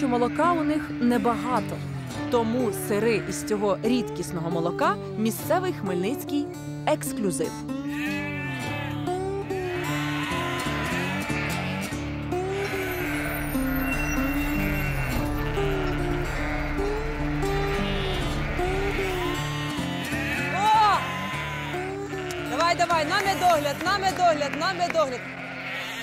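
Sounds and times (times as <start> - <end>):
sheep bleating: 0.0 - 4.9, 7.7 - 26.0
background music with repeating melody: 11.6 - 22.3.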